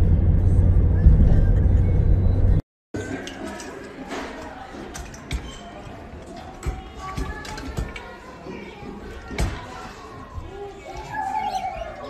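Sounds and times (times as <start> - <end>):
faint voices: 3.0 - 12.0.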